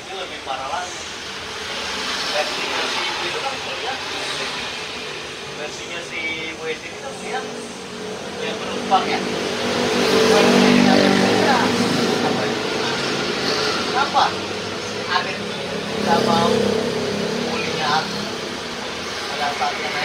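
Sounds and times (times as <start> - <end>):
men talking: 0.0 - 20.0
vehicles passing: 0.0 - 20.0.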